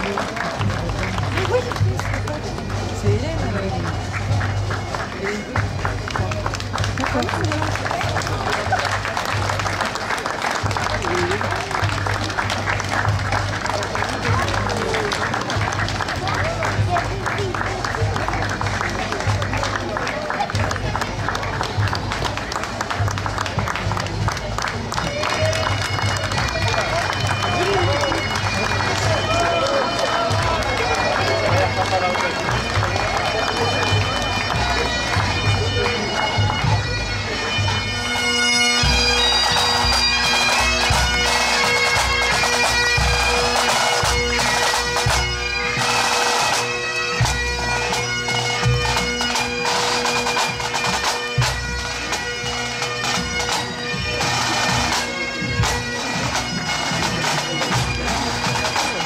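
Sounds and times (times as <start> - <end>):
bagpipes playing: 0.0 - 59.0
crowd voices: 0.0 - 59.0.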